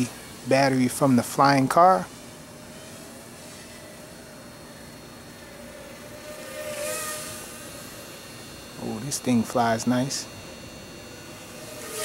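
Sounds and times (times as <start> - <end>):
drone motors whining: 0.0 - 12.0
steady hiss: 0.0 - 12.0.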